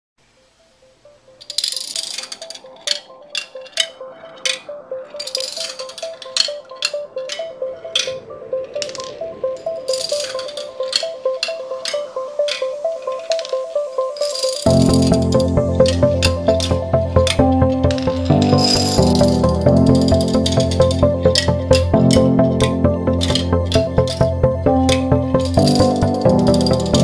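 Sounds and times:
music with short mid-pitched notes: 0.8 - 27.0.

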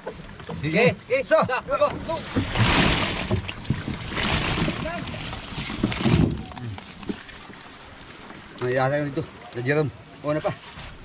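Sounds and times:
men talking and calling out: 0.5 - 2.6.

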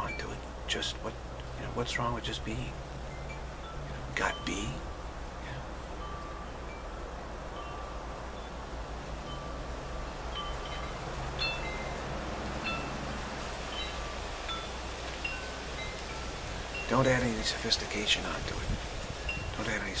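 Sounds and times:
wind chimes ringing: 0.0 - 0.9, 1.6 - 20.0.

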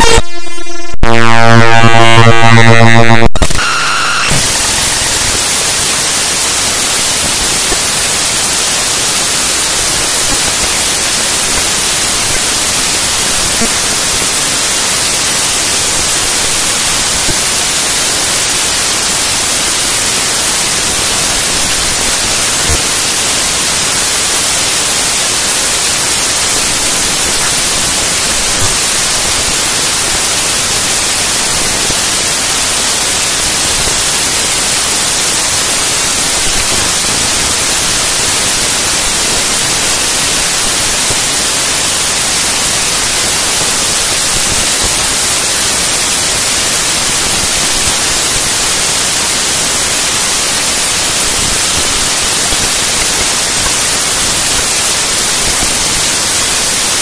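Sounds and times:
static-like electronic noise: 0.0 - 57.0.

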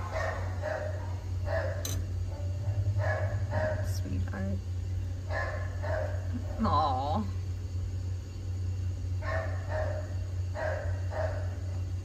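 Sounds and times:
dogs barking: 0.0 - 4.0, 5.2 - 6.8, 9.2 - 11.8
steady low hum: 0.0 - 12.0.

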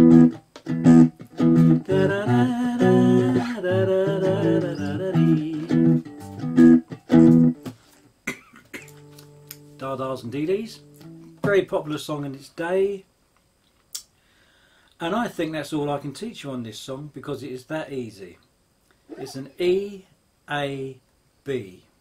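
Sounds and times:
guitar sliding note: 0.0 - 7.7, 19.1 - 19.6
guitar strumming chords: 0.0 - 7.8, 8.6 - 11.8
person humming: 1.8 - 6.0.

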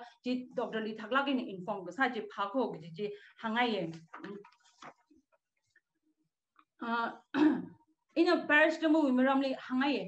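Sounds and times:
woman clearing her throat: 7.3 - 7.8.

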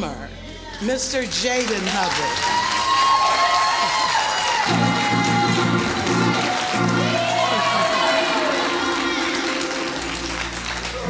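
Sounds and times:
congregation applauding: 0.8 - 11.0
band playing keyboard chords: 4.5 - 11.0.

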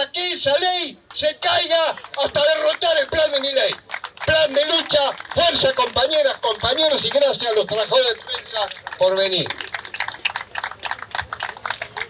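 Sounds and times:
small crowd clapping: 1.8 - 12.0.

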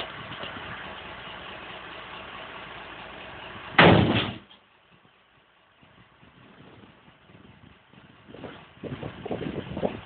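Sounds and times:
truck engine running: 0.0 - 10.0
loud bang: 3.7 - 4.5.

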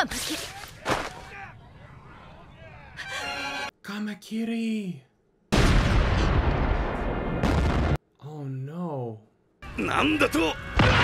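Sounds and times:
rumbling explosion blast: 5.5 - 8.0.

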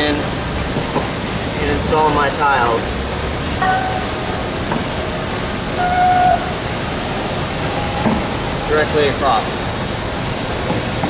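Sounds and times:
steady rushing noise: 0.0 - 11.0.

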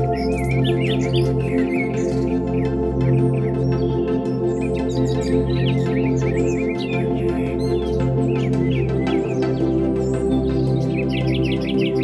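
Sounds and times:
ambient synthesizer chords: 0.0 - 12.0
birds chirping: 0.0 - 12.0.

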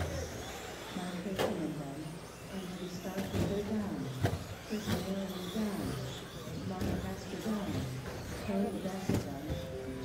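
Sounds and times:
rc truck motors whining: 0.0 - 10.0.

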